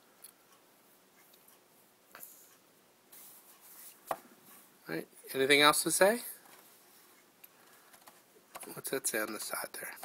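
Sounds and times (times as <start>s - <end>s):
soft rustling handling noise: 2.2s - 10.0s.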